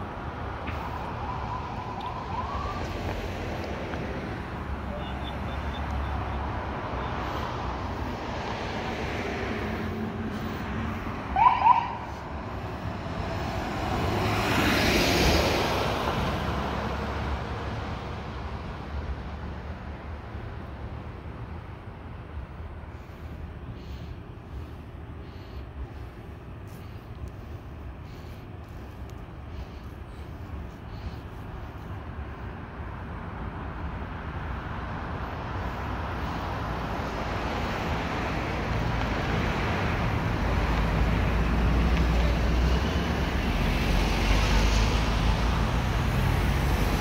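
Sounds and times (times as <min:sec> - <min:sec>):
traffic rumble: 0:00.0 - 0:47.0
vehicle passing: 0:00.0 - 0:47.0
police siren chirp: 0:00.9 - 0:03.1, 0:11.3 - 0:12.2.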